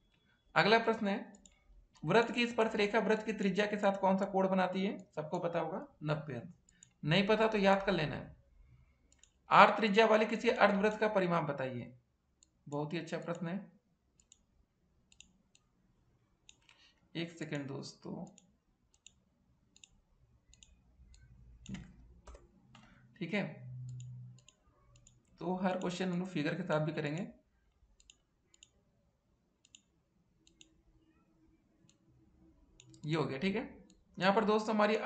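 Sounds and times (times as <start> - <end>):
faint computer mouse clicks: 1.3 - 2.0, 6.6 - 7.0, 9.1 - 9.4, 14.2 - 14.5, 15.1 - 15.7, 16.5 - 17.0, 18.3 - 19.2, 19.8 - 23.0, 23.8 - 26.0, 27.6 - 28.8, 29.6 - 30.8, 32.8 - 33.1.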